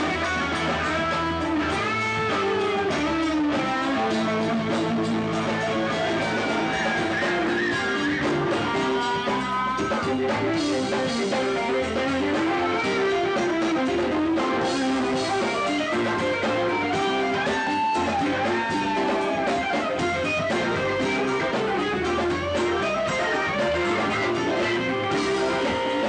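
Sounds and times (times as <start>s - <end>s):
band playing: 0.0s - 26.0s
electric guitar lead: 0.0s - 26.0s.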